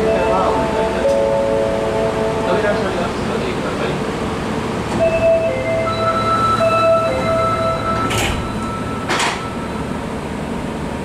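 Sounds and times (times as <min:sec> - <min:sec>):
subway doors sliding shut: 0:00.0 - 0:11.0
electronic chime tones: 0:05.0 - 0:10.0.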